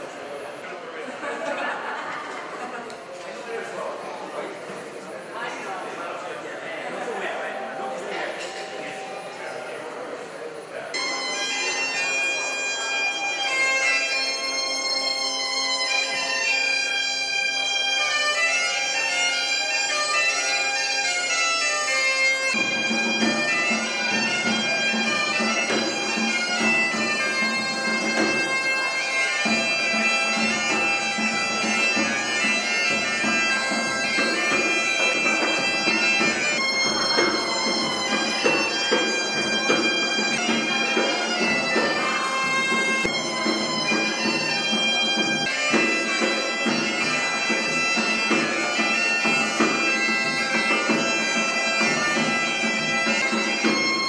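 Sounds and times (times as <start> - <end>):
bagpipe drone: 10.8 - 54.0
bagpipe melody: 10.8 - 54.0.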